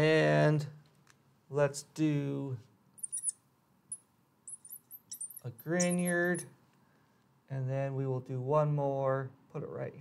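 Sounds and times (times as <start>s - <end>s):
marker squeaking on glass: 3.0s - 3.4s, 4.5s - 6.5s.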